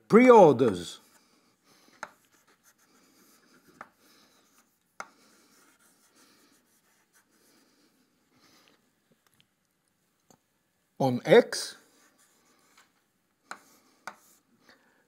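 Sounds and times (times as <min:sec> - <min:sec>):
chalk tapping: 0:01.9 - 0:07.3, 0:12.0 - 0:14.5
chalk scratching on blackboard: 0:01.9 - 0:07.7, 0:11.9 - 0:12.8, 0:13.5 - 0:14.5.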